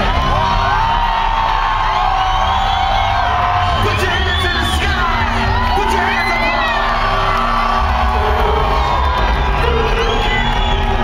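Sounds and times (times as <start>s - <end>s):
crowd cheering and screaming: 0.0s - 11.0s
loud live music: 0.0s - 11.0s.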